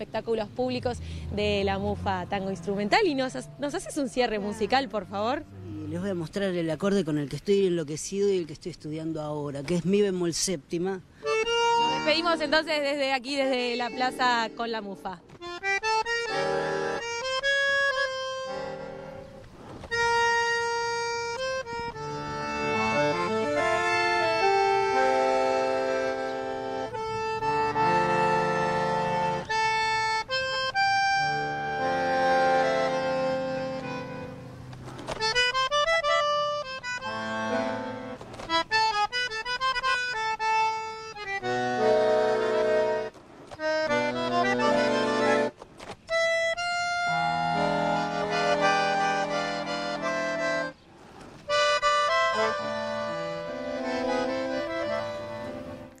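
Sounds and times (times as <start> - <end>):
bandoneon playing tango: 0.0 - 7.3, 11.2 - 50.8, 51.4 - 56.0.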